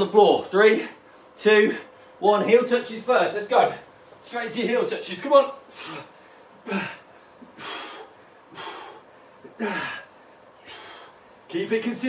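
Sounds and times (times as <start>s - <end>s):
man breathing heavily: 5.6s - 11.5s.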